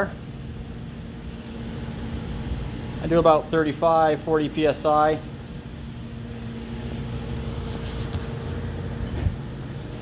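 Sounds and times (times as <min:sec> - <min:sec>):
mechanical hum with held tones: 0:00.0 - 0:10.0.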